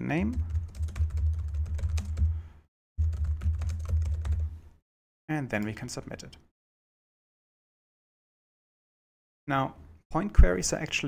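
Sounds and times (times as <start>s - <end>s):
computer keyboard typing: 0.3s - 2.3s, 3.0s - 4.5s.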